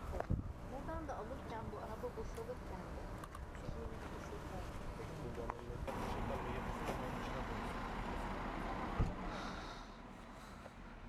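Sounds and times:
steady outdoor noise: 0:00.0 - 0:11.0.

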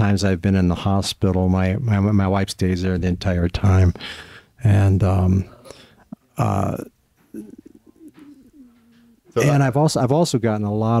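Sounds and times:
dove cooing: 0:07.3 - 0:09.6.

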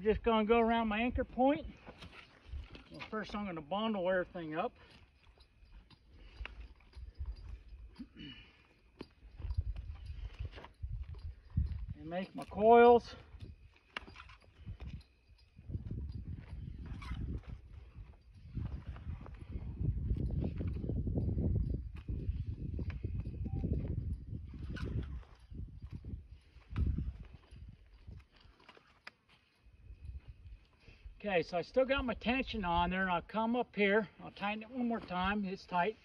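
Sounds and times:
rope rustling and scraping: 0:00.0 - 0:31.8.

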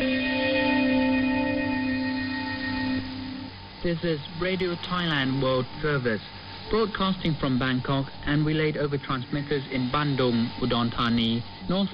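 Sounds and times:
long held musical note: 0:00.0 - 0:03.6.

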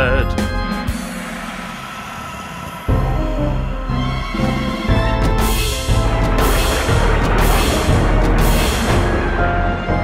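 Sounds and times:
steady rushing noise: 0:00.6 - 0:10.0.

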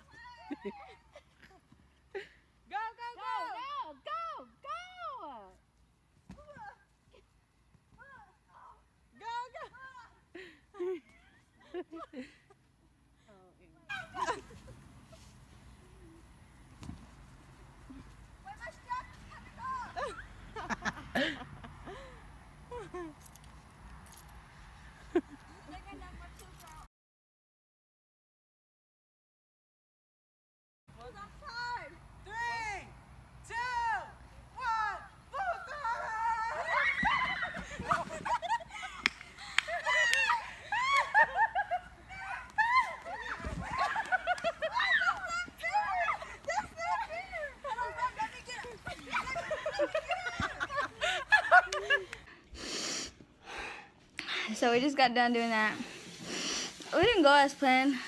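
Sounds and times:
young people shouting and laughing: 0:00.0 - 0:05.5, 0:08.0 - 0:12.7, 0:13.6 - 0:15.3, 0:17.9 - 0:23.2, 0:31.1 - 0:52.4
low outdoor hum: 0:00.0 - 0:26.9
distant voices shouting and squealing: 0:33.5 - 0:38.1.

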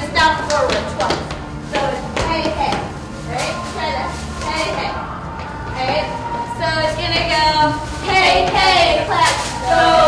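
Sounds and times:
girls talking and calling out: 0:00.0 - 0:10.0.

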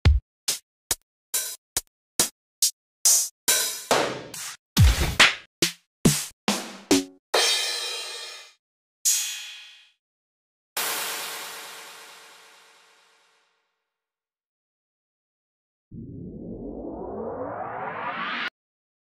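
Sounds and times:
synthesized riser sweep: 0:15.9 - 0:18.6.

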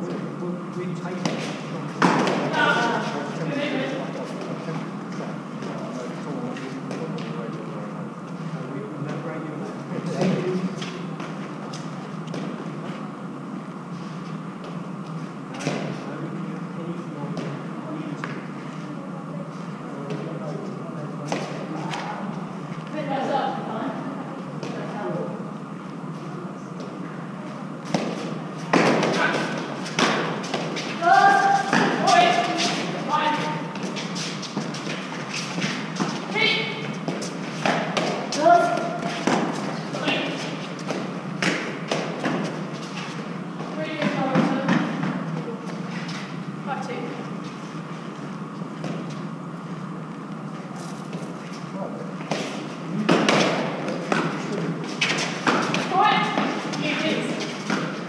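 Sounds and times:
ball smacking concrete walls: 0:27.9 - 0:32.9.

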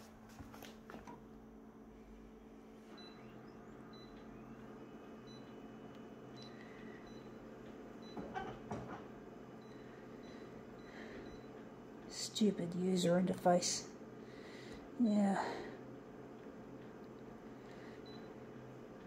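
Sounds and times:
copier humming: 0:00.0 - 0:19.0.

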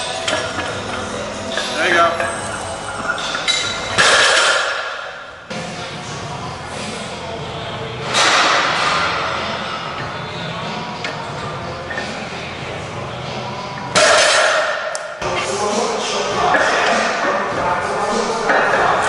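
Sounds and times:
barbell plates clinking and clanking: 0:00.0 - 0:05.2
gym background noise: 0:00.0 - 0:19.0.

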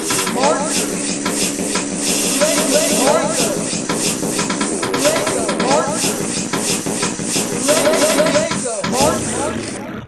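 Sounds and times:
repeating hissing sample: 0:00.0 - 0:09.9
chopped voice snippet: 0:07.5 - 0:10.0.

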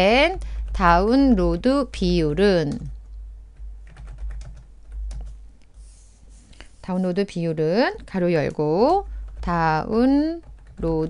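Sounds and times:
computer keyboard typing: 0:00.0 - 0:05.4, 0:07.8 - 0:11.0.

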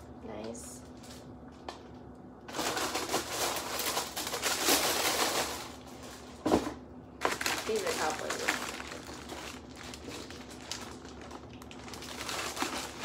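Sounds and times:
paper packaging crinkling: 0:00.8 - 0:06.5, 0:07.2 - 0:13.0.

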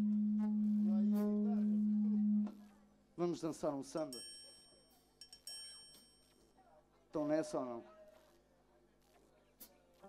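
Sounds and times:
steady low pure tone: 0:00.0 - 0:02.6.

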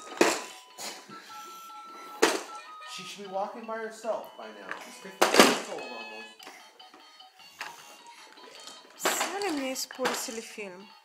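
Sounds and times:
electronic toy tune: 0:00.4 - 0:10.0.

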